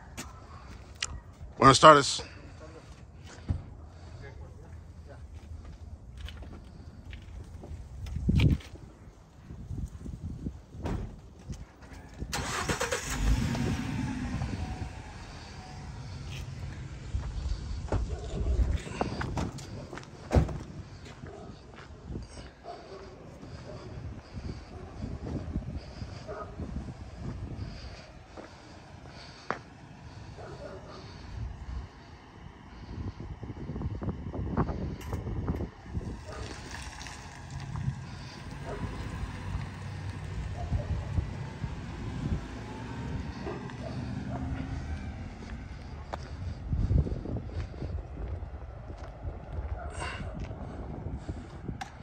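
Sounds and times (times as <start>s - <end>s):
wind buffeting microphone: 5.8s - 12.4s, 13.2s - 22.6s, 23.4s - 29.1s, 30.0s - 52.0s
car engine cranking and idling: 10.6s - 21.8s, 35.0s - 49.1s
thud: 10.8s - 11.2s.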